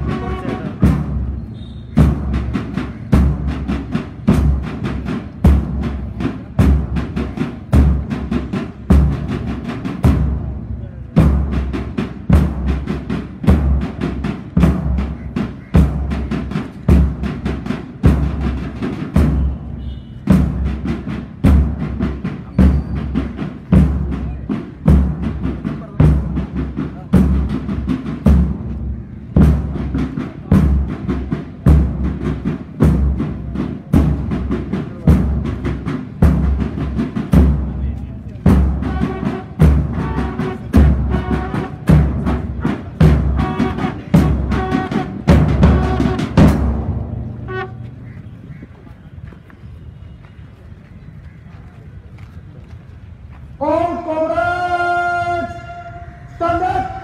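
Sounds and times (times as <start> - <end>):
marching drums: 0.0 - 50.2.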